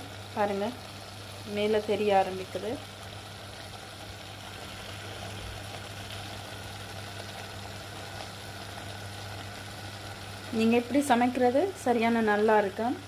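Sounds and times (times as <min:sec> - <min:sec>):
curry bubbling in a pot: 0:00.1 - 0:10.6.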